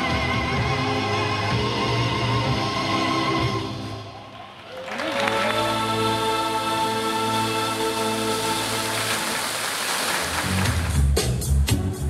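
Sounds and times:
fountain water splashing: 7.4s - 11.0s.

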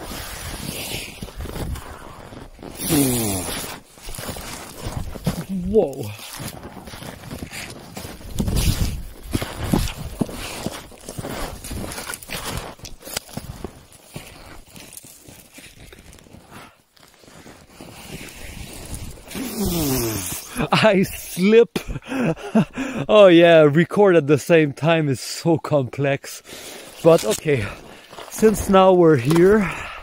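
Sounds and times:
snowshoes crunching through snow: 0.0s - 20.6s, 26.5s - 29.8s.

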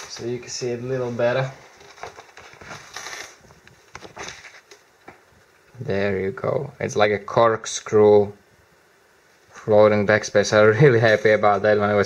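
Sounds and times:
cloth rustling: 0.0s - 4.8s.

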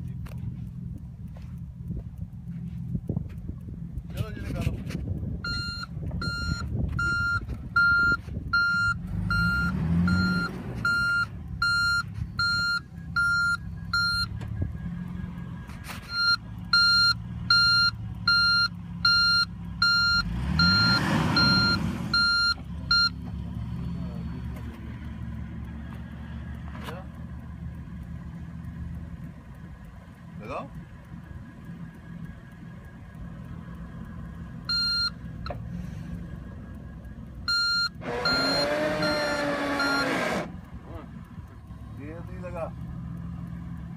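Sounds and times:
suv engine running: 0.0s - 43.9s
engine revving: 3.9s - 43.9s
reversing warning beeps: 5.4s - 24.4s, 34.6s - 35.6s, 37.0s - 40.5s.

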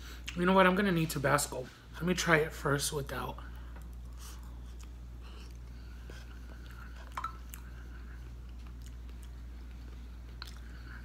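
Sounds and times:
low electrical hum: 0.0s - 11.0s
man chewing food: 3.4s - 11.0s.

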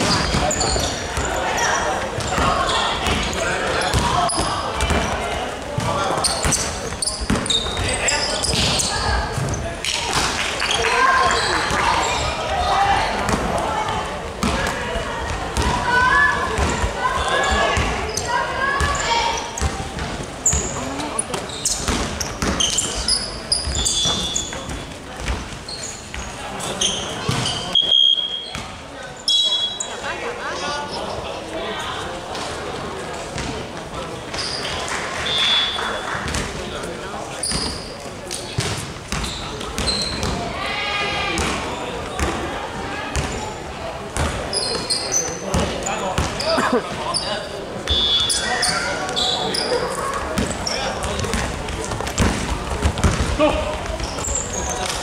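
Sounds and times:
basketball bouncing on hardwood floor: 52.2s - 53.4s.

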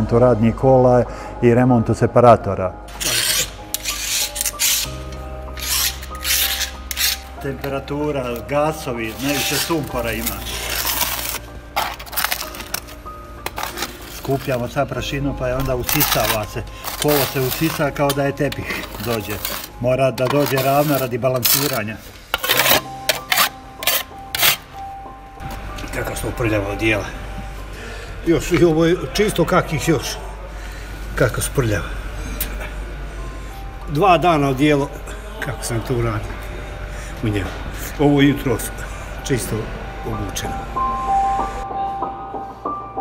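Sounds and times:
metal shovel scraping coal: 2.9s - 7.5s, 9.0s - 14.9s, 15.6s - 24.7s
hand tool rasping on metal: 3.0s - 7.3s, 16.0s - 24.6s.

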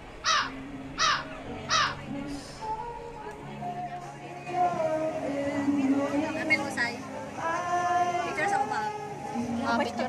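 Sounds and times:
crow cawing: 0.2s - 2.0s.

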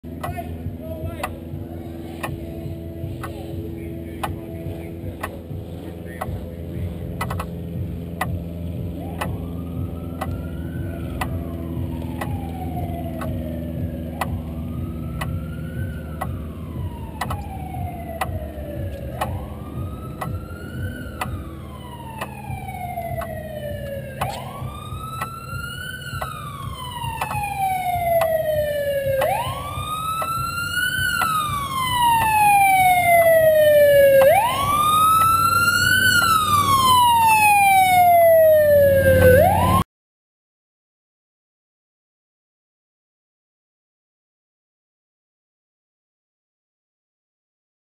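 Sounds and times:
steady low rumble: 0.0s - 39.8s
police siren wailing: 0.0s - 39.9s.

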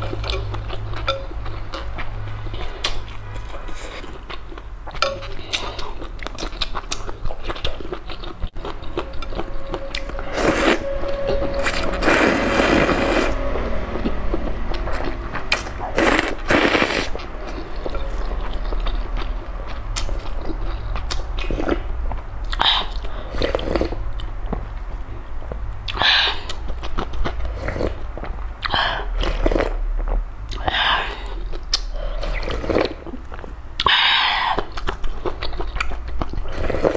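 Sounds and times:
person chewing wetly: 0.0s - 10.7s, 15.3s - 24.6s, 25.4s - 36.9s
steady low hum: 0.0s - 36.9s
wet noodle slurp: 15.5s - 17.2s.

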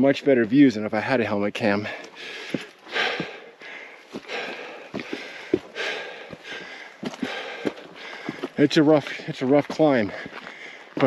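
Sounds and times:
footsteps on rock: 1.6s - 11.0s
man breathing hard: 1.8s - 9.3s, 10.0s - 11.0s.

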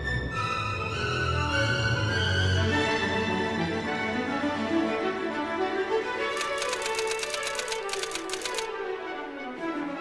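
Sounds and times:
orchestral background music: 0.0s - 6.4s, 8.7s - 10.0s
typewriter key clicks: 6.4s - 8.7s.

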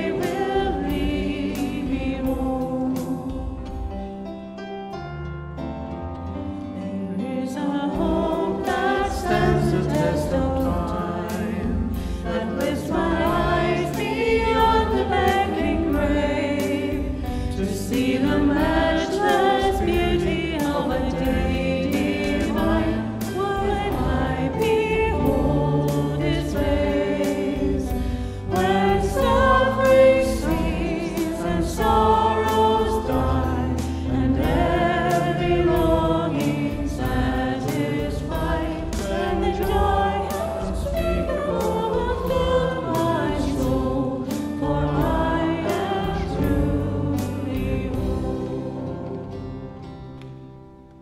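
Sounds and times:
choir singing a hymn: 0.0s - 4.3s, 6.2s - 51.0s
instrumental accompaniment: 0.0s - 51.0s.

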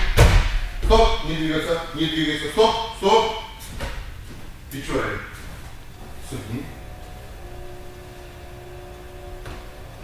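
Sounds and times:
faint constant tones: 0.0s - 10.0s
low room hum: 0.0s - 10.0s.

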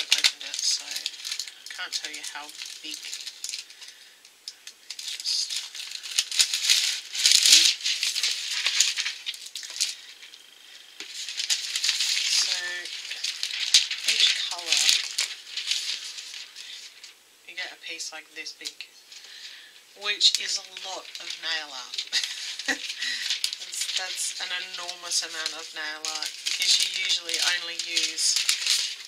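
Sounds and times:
metallic foil sheets crinkling: 0.0s - 29.0s.

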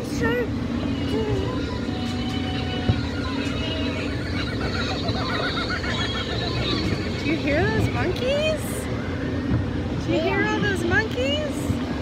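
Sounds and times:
jeep rumbling: 0.0s - 12.0s.

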